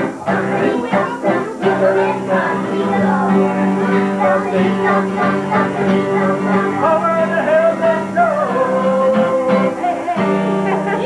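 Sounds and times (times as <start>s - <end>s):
acoustic guitar: 0.0s - 11.0s
electric guitar: 0.0s - 11.0s
man singing: 0.0s - 11.0s
people singing along: 0.0s - 11.0s.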